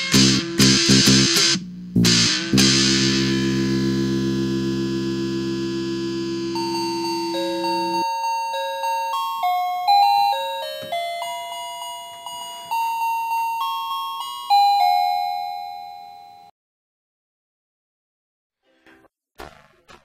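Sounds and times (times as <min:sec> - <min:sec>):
distorted electric guitar chord: 0:00.0 - 0:08.1
chiming bell-like melody: 0:06.6 - 0:16.5.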